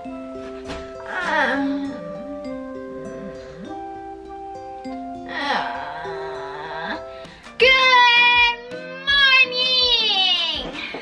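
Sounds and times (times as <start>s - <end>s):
backing music: 0.0s - 11.0s
girl singing long notes: 1.0s - 4.0s, 5.2s - 10.2s.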